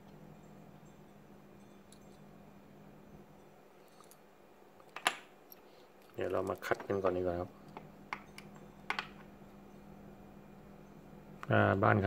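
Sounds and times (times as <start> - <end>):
steady low hum: 0.0 - 12.0
light clicks of small parts: 3.8 - 9.6.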